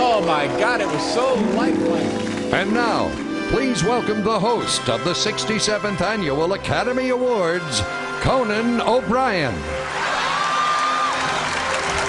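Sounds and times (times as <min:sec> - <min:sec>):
audience cheering and applauding: 0:00.0 - 0:05.1, 0:09.7 - 0:12.0
music: 0:00.0 - 0:12.0
held high note: 0:00.9 - 0:05.5.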